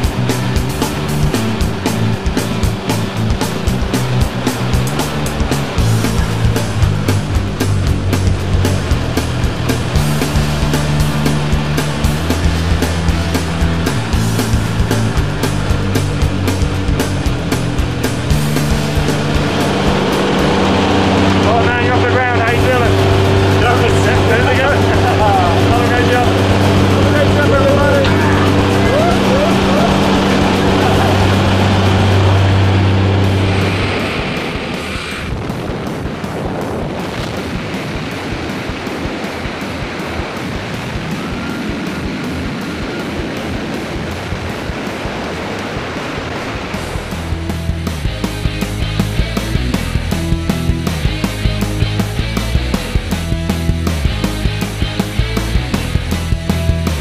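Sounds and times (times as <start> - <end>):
background music with beat: 0.0 - 33.7, 35.3 - 57.0.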